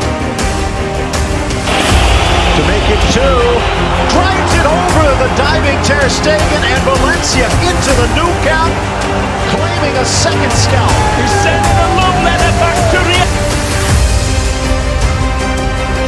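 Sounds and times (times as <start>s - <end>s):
background music: 0.0s - 16.0s
stadium crowd noise: 1.6s - 13.8s.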